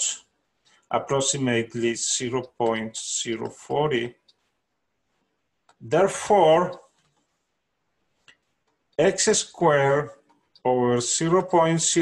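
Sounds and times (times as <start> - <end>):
stylus tapping on screen: 2.2 - 7.3.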